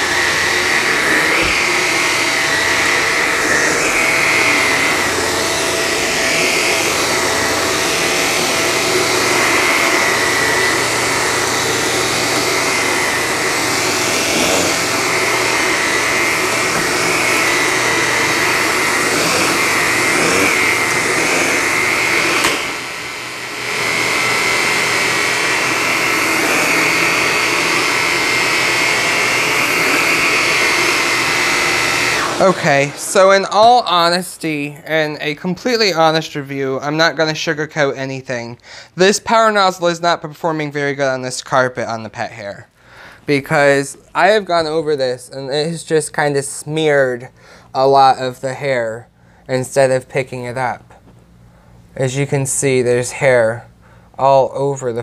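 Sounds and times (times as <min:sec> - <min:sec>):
vacuum cleaner motor whine: 0:00.0 - 0:36.2.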